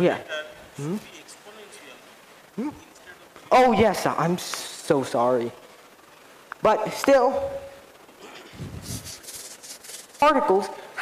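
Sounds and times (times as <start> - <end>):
chalk scratching on chalkboard: 8.8 - 10.2.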